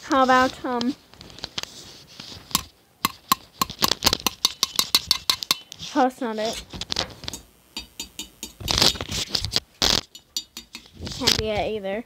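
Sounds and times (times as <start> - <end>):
hard objects tapping: 2.5 - 5.9, 7.3 - 9.1, 9.8 - 11.5.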